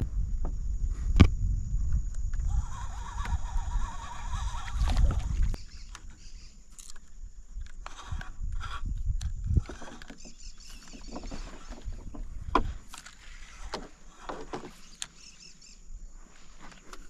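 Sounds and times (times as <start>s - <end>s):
wind rumble on microphone: 0.0s - 6.5s, 7.1s - 13.8s.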